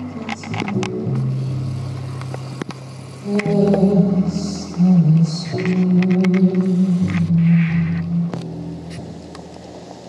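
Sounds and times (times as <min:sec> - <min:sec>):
person singing: 0:00.0 - 0:02.0, 0:03.2 - 0:08.6
acoustic ensemble music: 0:00.0 - 0:10.0.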